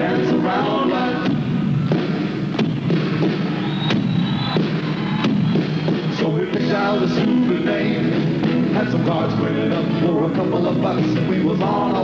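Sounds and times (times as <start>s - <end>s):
person singing: 0.0s - 1.4s, 6.2s - 12.0s
live rock band playing: 0.0s - 12.0s.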